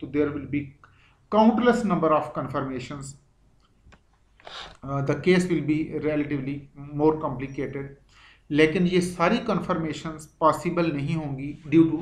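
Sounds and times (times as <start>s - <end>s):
man narrating: 0.0s - 3.2s, 4.8s - 12.0s
intake of breath: 8.0s - 8.5s.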